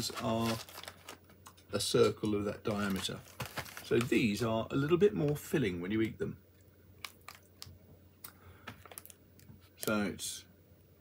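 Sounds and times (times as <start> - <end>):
man talking: 0.0 - 0.7, 1.7 - 3.3, 3.9 - 6.4, 9.8 - 10.5
crispbread packet crinkling: 0.0 - 4.4, 7.0 - 7.8, 8.7 - 10.1.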